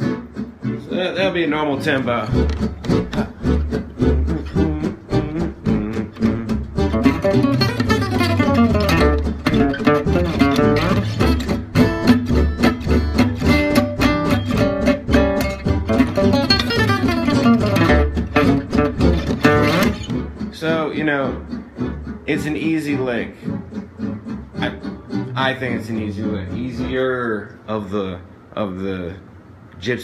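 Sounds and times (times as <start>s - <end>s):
jazz acoustic guitar picked runs: 0.0s - 28.2s.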